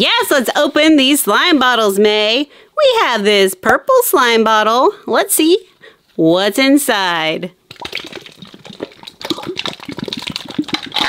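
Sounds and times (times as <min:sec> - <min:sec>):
slime squelching and popping: 0:07.6 - 0:11.0.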